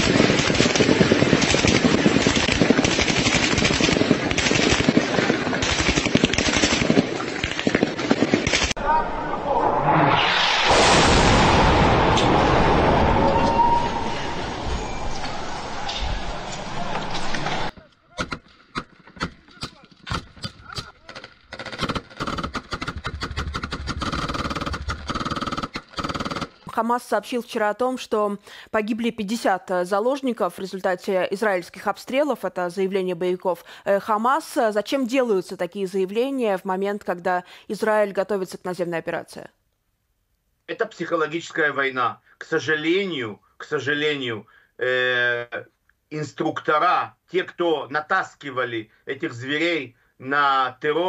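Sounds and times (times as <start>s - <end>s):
rapid automatic gunfire: 0.0s - 8.8s, 21.5s - 26.6s.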